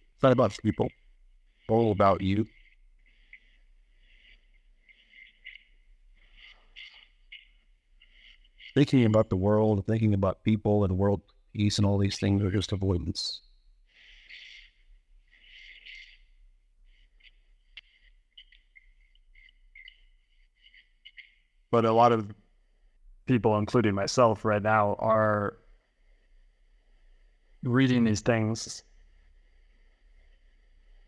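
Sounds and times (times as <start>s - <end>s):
faint high chirps: 13.3s - 21.7s.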